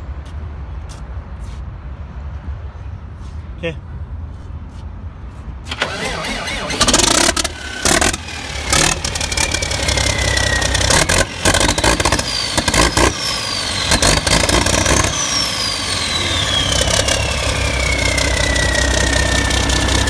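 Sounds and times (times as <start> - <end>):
diesel engine cranking and running: 5.6 - 20.0.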